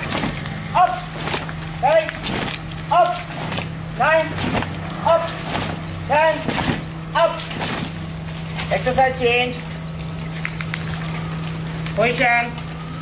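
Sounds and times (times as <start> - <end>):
steady low hum: 0.0 - 13.0
group shouting counts: 0.7 - 7.6.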